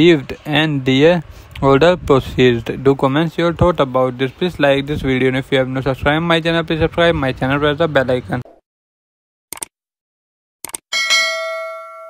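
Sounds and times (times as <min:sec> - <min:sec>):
notification bell ding: 0:10.9 - 0:12.0.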